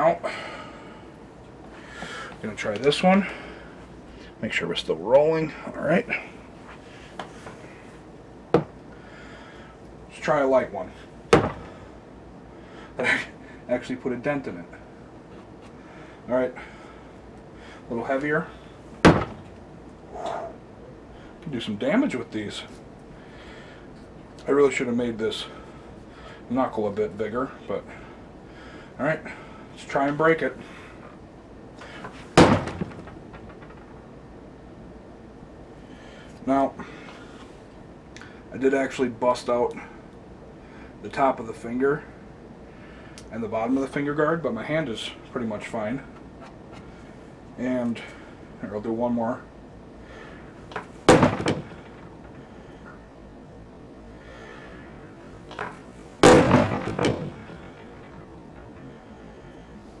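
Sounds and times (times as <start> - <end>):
punch smacking wood: 11.3 - 11.7, 19.0 - 19.6, 32.3 - 33.8, 50.7 - 52.0, 55.6 - 57.6.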